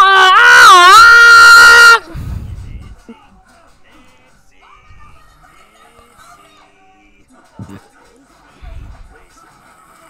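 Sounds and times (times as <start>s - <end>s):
high-pitched wailing cry: 0.0s - 2.1s.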